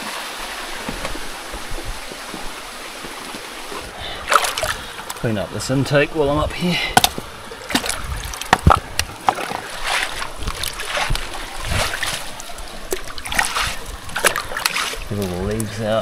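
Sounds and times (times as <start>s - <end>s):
irregular splashes: 0.0s - 5.3s, 6.9s - 15.9s
stream water running over a pipe: 0.0s - 16.0s.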